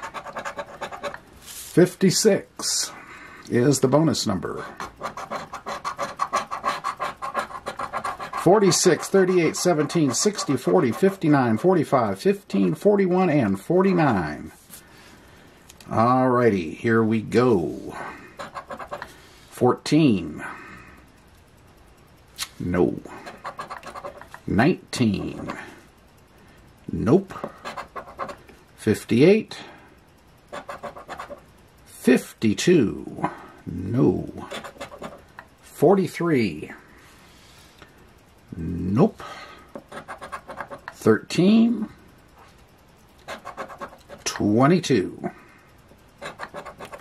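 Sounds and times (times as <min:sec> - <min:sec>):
scraper scratching lottery ticket: 0:00.0 - 0:01.2, 0:04.4 - 0:12.0, 0:18.4 - 0:19.1, 0:23.2 - 0:24.4, 0:27.4 - 0:28.4, 0:30.5 - 0:31.4, 0:34.3 - 0:35.3, 0:39.8 - 0:41.0, 0:43.2 - 0:44.4, 0:46.2 - 0:47.0.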